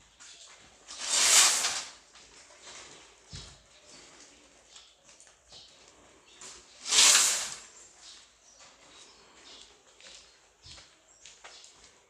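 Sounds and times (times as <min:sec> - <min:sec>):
faint workshop background: 0:00.0 - 0:12.0
brief hissing swish: 0:01.0 - 0:01.9, 0:06.8 - 0:07.7.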